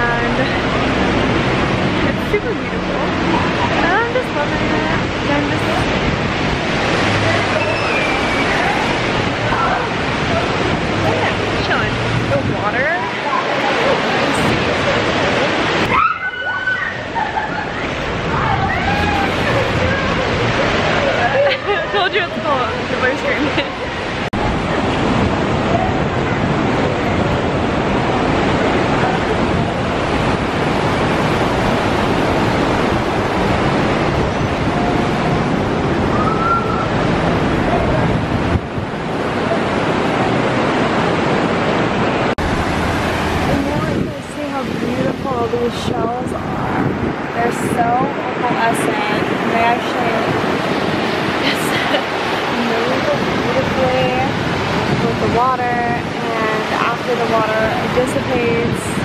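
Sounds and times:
ocean waves breaking on beach: 0:00.0 - 0:59.0
surf washing over rocks: 0:00.0 - 0:59.0.

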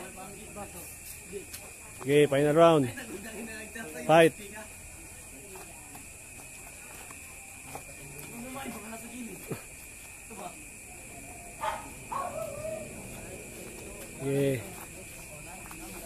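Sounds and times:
faint voices: 0:04.8 - 0:16.0.

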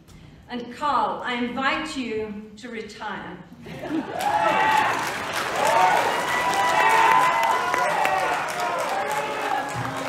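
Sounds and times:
audience applauding: 0:04.1 - 0:10.0.

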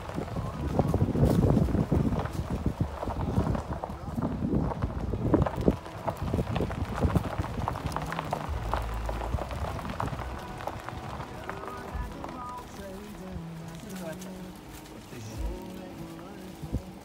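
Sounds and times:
footsteps crunching dry leaves: 0:00.0 - 0:17.0.

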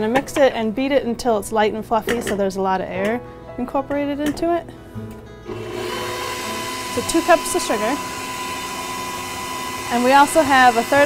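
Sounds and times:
stand mixer motor hum: 0:05.5 - 0:11.0.

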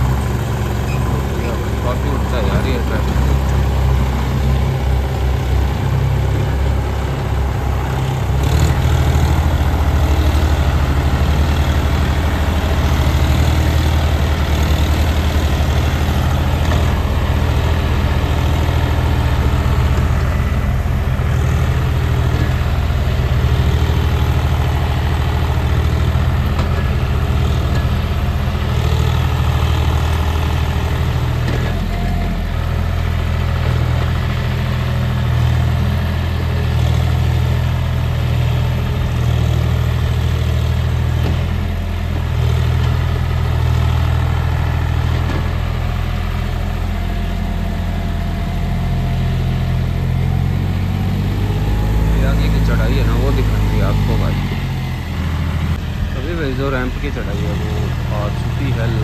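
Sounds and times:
tractor diesel engine under load: 0:00.0 - 0:59.0.

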